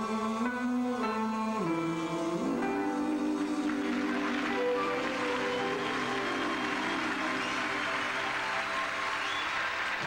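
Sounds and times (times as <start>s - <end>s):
audience applauding: 3.5s - 10.0s.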